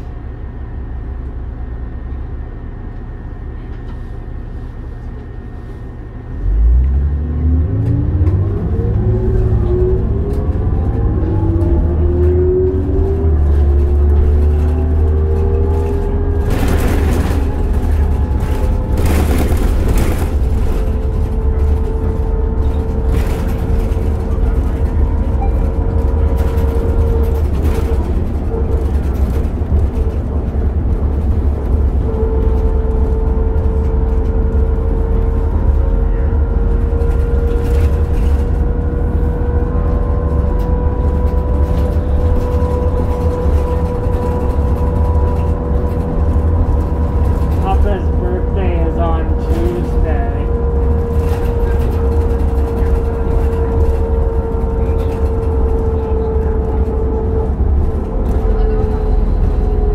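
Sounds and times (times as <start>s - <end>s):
bus engine and road rumble: 0.0s - 59.9s
constant whine: 0.0s - 59.9s.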